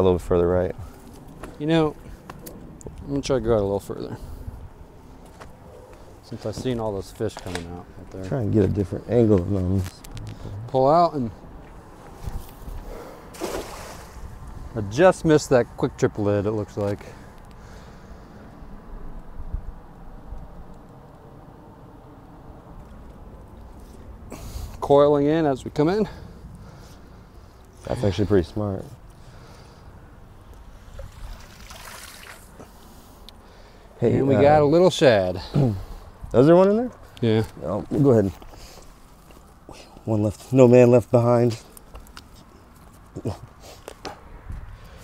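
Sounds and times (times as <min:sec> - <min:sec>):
cast net splashing on water: 0:13.3 - 0:14.2, 0:31.0 - 0:32.6.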